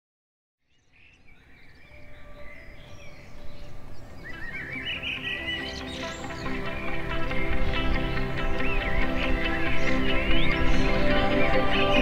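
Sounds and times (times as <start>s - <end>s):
birds calling: 0.8s - 12.0s
background music: 2.0s - 12.0s.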